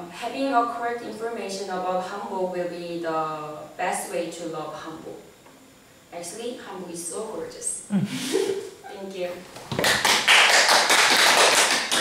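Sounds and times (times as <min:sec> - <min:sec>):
audience applauding: 0:09.7 - 0:12.0.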